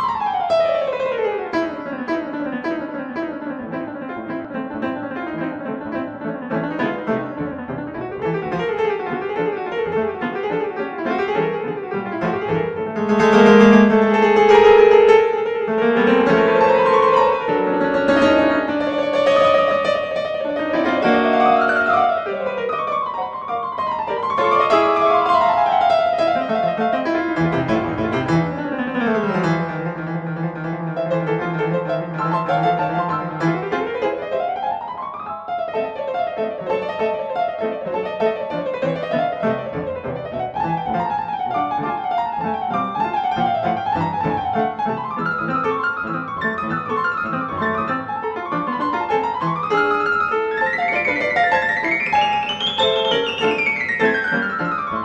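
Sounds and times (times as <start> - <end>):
piano music with running scales: 0.0 - 55.0.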